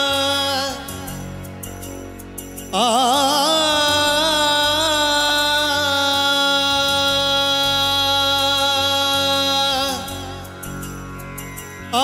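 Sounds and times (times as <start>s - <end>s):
man singing a long note: 2.8s - 10.6s.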